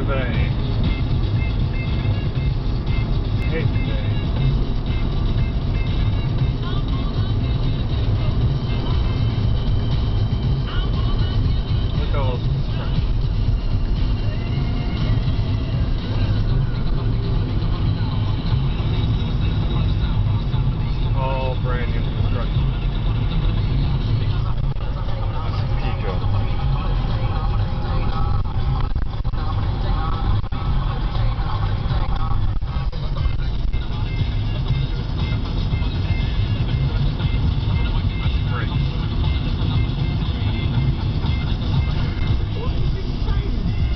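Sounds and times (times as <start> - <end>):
car road and engine rumble: 0.0 - 43.9
faint music: 0.0 - 43.9.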